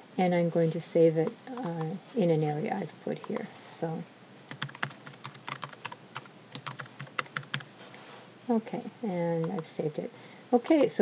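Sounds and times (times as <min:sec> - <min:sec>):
typing on computer keyboard: 0:04.5 - 0:07.7, 0:09.4 - 0:09.7, 0:10.7 - 0:11.0.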